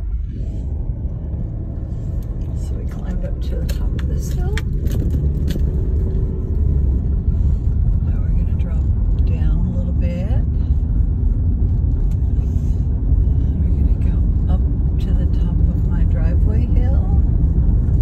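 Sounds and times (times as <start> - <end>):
car engine rumble: 0.0 - 18.0.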